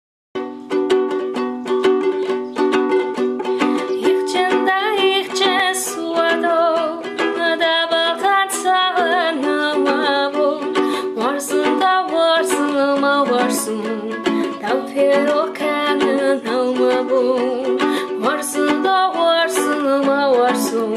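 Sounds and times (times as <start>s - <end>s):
ukulele strumming: 0.4s - 20.9s
woman singing: 3.6s - 20.9s.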